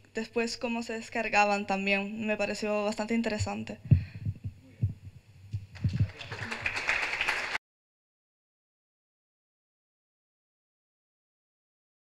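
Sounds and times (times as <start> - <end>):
low thumps: 3.3 - 6.1
audience applause: 5.8 - 7.6.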